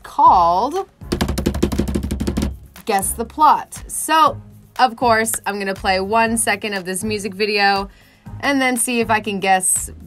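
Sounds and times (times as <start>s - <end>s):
hands drumming on desktop: 1.0s - 3.0s.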